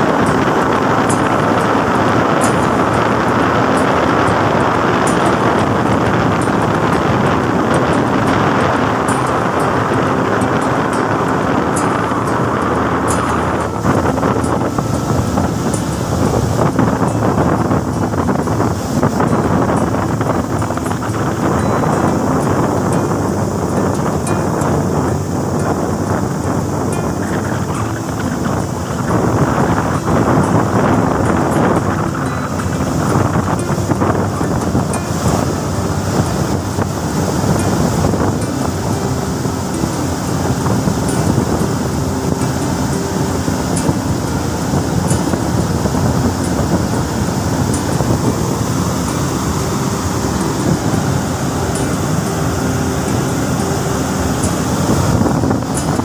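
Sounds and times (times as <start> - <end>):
cooling water rushing into basin: 0.0 - 56.0.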